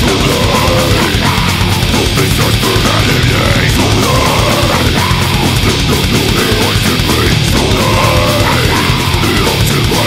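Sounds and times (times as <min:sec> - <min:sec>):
distorted electric guitars: 0:00.0 - 0:10.0
fast pounding drums: 0:00.0 - 0:10.0.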